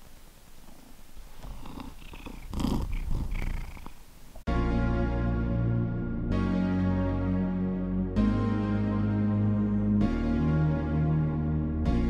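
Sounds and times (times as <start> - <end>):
cat purring: 0.0 - 4.4.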